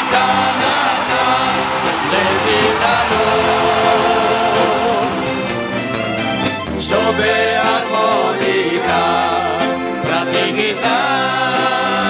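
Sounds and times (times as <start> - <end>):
accordion melody: 0.0 - 12.0
person singing: 0.0 - 12.0.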